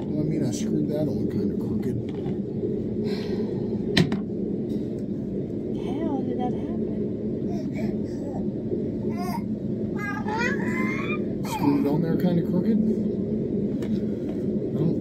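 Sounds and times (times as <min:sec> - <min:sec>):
steady low hum: 0:00.0 - 0:15.0
baby babbling: 0:09.1 - 0:11.3.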